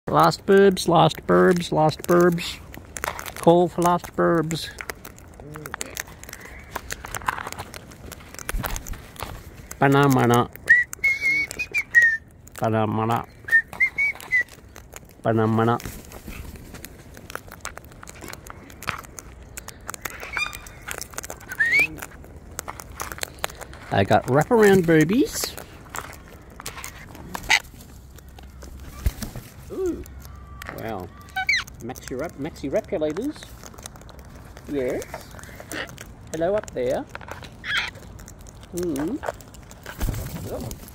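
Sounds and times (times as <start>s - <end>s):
birds cracking seed husks: 0.1s - 40.9s
cockatoo squawk: 20.0s - 21.8s, 27.4s - 27.7s, 29.8s - 31.7s, 37.6s - 38.0s.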